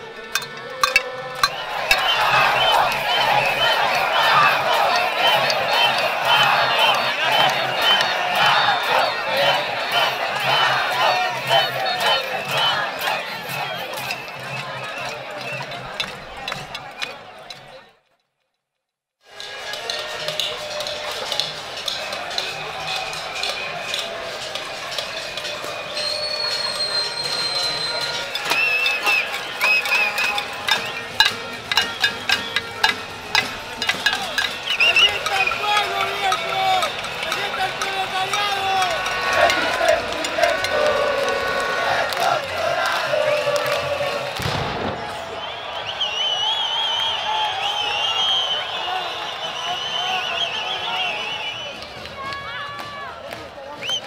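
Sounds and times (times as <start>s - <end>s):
crowd shouting and chanting: 0.0s - 18.0s, 19.3s - 54.0s
held whistle-like tone: 1.4s - 9.1s, 25.4s - 37.6s, 44.4s - 52.0s, 53.8s - 54.0s.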